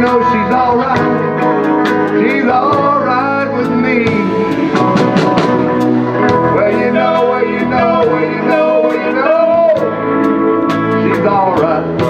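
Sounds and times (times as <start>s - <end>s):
live band playing: 0.0s - 12.0s
drums and cymbal hits: 0.9s - 9.0s.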